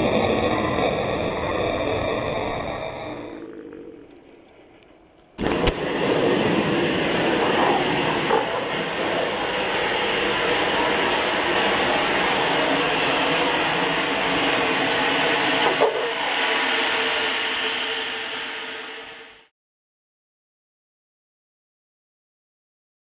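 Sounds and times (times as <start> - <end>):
compressed gas hissing: 0.0 - 19.5
sharp pop: 5.4 - 5.9.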